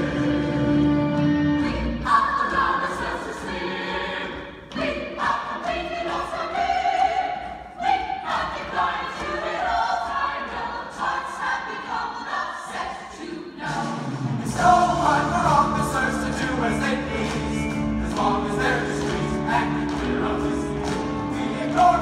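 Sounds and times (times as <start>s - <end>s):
chorus singing: 0.0s - 22.0s
instrumental accompaniment: 14.0s - 22.0s.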